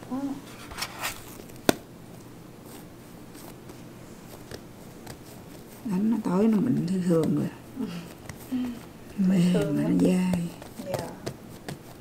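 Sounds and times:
hands pressing bread dough: 0:01.4 - 0:12.0
faint taps: 0:06.4 - 0:07.5.

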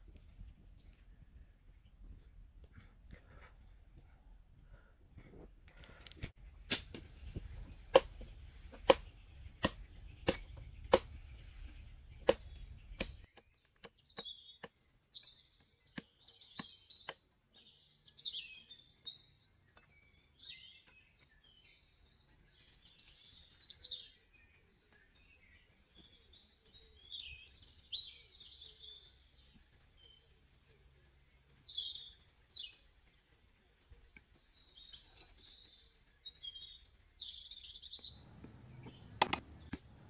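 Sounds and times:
machete chopping wooden stick: 0:06.6 - 0:07.1, 0:07.8 - 0:11.2, 0:12.2 - 0:14.8
birds chirping: 0:07.4 - 0:40.0.

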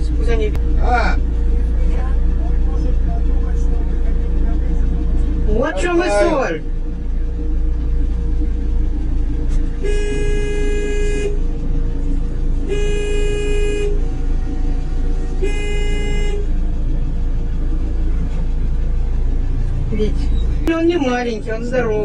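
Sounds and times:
vehicle engine idling: 0:00.0 - 0:22.0
vehicle horn blasts: 0:09.6 - 0:11.7, 0:12.6 - 0:14.4, 0:15.2 - 0:16.7.

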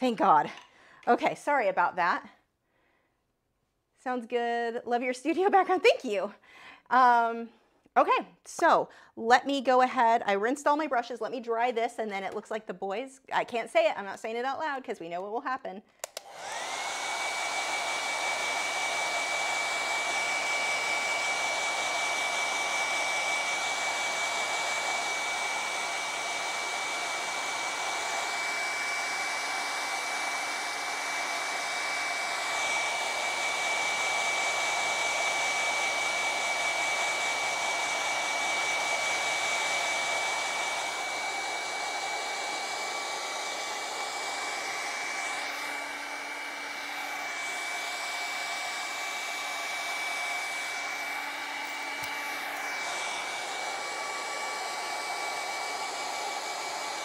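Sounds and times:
hair dryer whining: 0:00.0 - 0:02.0, 0:16.0 - 0:57.0.

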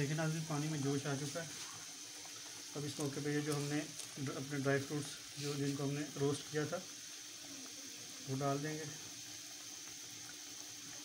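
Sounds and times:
water boiling in a pan: 0:00.0 - 0:11.0.

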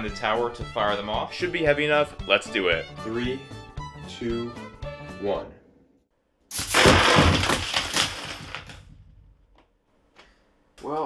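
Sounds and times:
plastic bricks clattering on wooden floor: 0:06.5 - 0:08.9
plastic tower crashing: 0:06.5 - 0:08.9.

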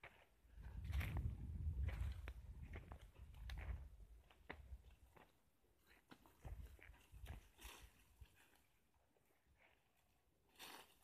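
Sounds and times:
footsteps on dry soil and stubble: 0:00.0 - 0:11.0
rustle: 0:06.2 - 0:08.8, 0:10.5 - 0:11.0.

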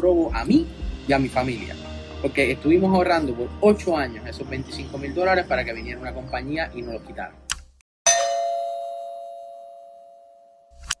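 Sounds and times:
bell-like chime: 0:08.1 - 0:10.8.

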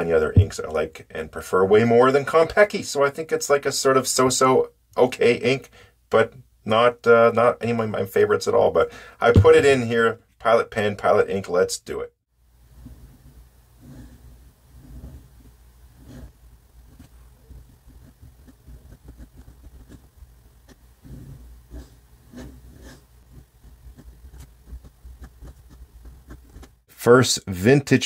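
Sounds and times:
fountain pen scratching on paper: 0:12.9 - 0:26.9.

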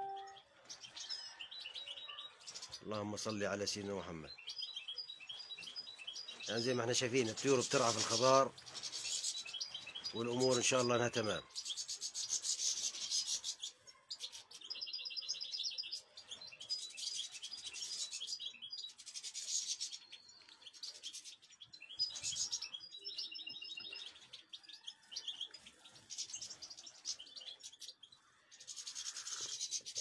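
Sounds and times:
birds twittering in high trills: 0:00.0 - 0:30.0.

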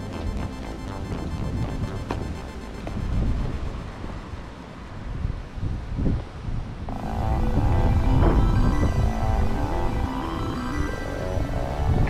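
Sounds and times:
wind buffeting microphone: 0:01.3 - 0:10.0.

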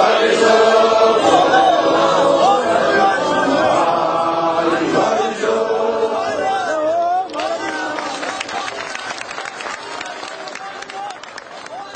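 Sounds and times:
congregation chanting in unison: 0:00.0 - 0:09.3.

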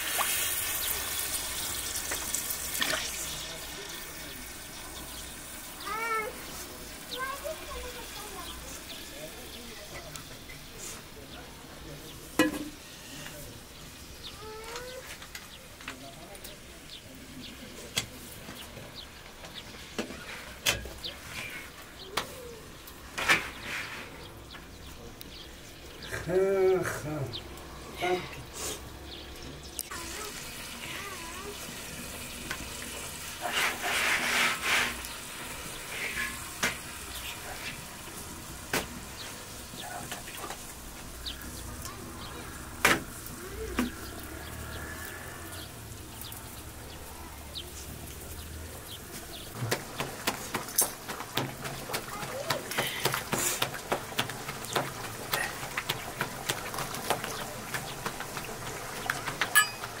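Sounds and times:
bread sizzling on griddle: 0:00.0 - 0:26.4, 0:27.4 - 1:00.0.

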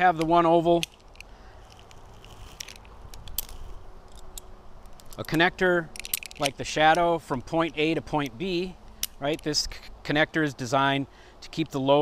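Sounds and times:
carabiners clicking: 0:00.0 - 0:09.8.

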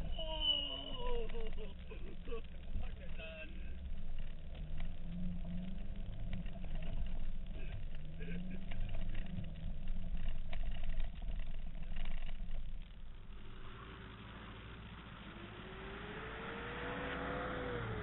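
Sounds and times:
low rumble: 0:00.0 - 0:18.0
engine revving: 0:13.3 - 0:18.0.

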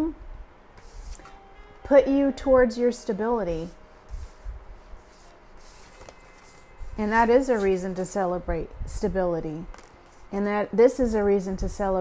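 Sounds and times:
rubbing and rustling handling noise: 0:03.4 - 0:08.3, 0:09.6 - 0:10.5.

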